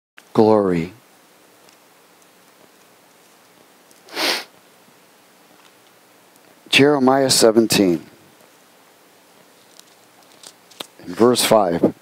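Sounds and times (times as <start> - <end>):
person sniffing: 4.0 - 4.6.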